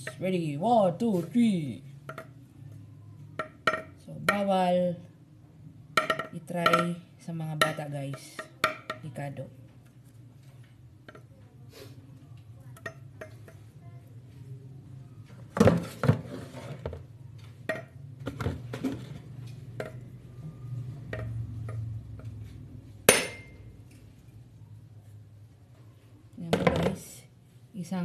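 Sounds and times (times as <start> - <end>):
low steady hum: 0.0 - 28.0
metal basin and cleaver clinking: 23.1 - 23.6.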